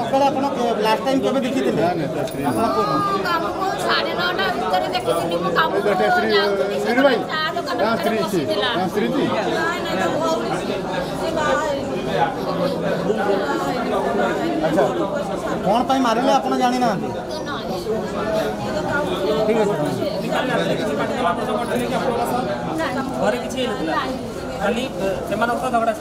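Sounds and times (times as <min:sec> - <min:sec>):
voices chattering: 0:00.0 - 0:26.0.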